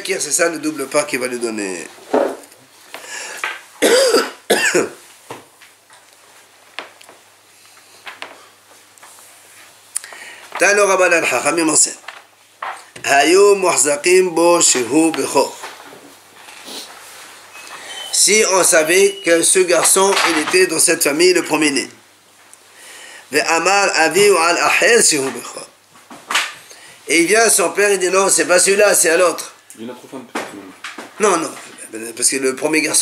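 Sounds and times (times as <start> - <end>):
faint hiss: 0.0 - 33.0
man clearing his throat: 3.8 - 5.0
man coughing: 3.8 - 5.0.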